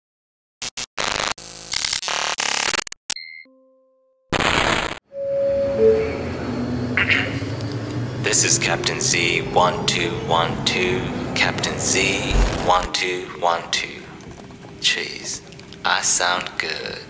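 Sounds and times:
glitchy static bursts: 0.7 - 2.9, 4.3 - 5.0
short noise burst: 12.3 - 12.9.

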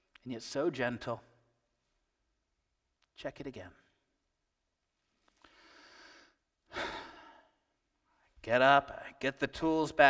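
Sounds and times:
man breathing in: 5.4 - 7.6
man sighing: 6.7 - 7.5.

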